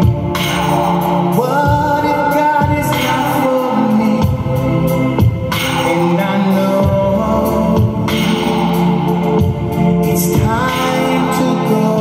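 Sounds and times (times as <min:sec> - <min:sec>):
string ensemble pop ballad: 0:00.0 - 0:12.0.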